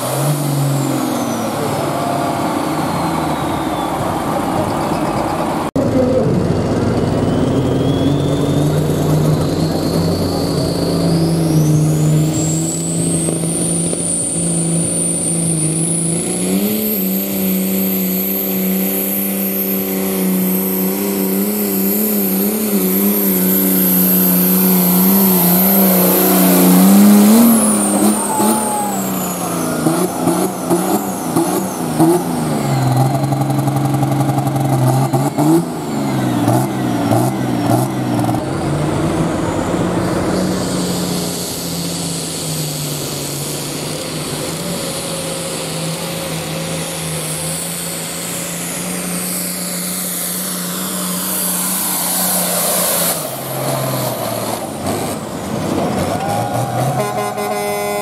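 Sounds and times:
tractor engine at high revs: 0.0 - 58.0.

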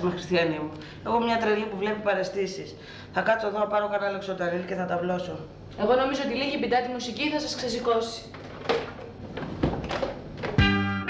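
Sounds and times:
loud music: 10.6 - 11.0.

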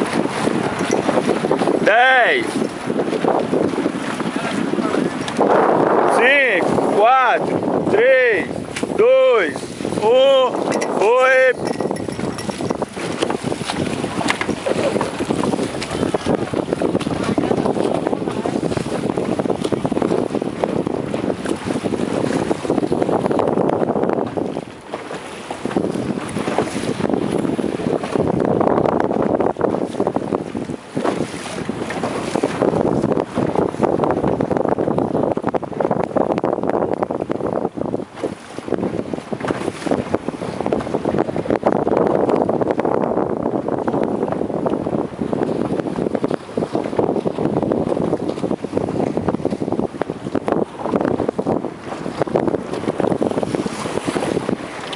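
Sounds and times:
water slapping along hull: 0.0 - 54.9
wind buffeting microphone: 0.0 - 54.9.

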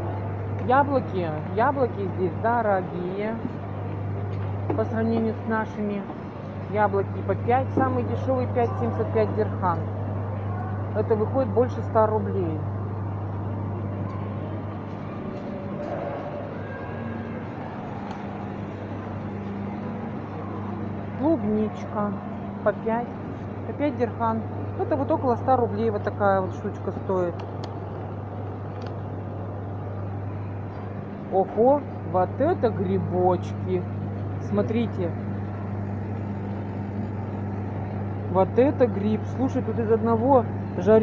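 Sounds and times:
low hum: 0.0 - 41.0
supermarket background noise: 0.0 - 41.0.

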